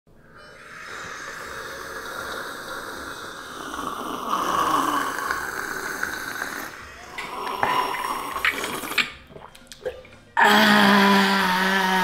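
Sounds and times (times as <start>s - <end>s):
slurping hot tea: 0.8s - 9.3s.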